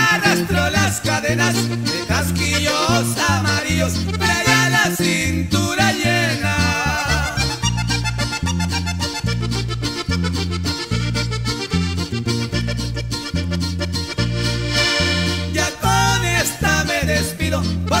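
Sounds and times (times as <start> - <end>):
accordion playing melody: 0.0 - 18.0
steady bass line: 0.0 - 18.0.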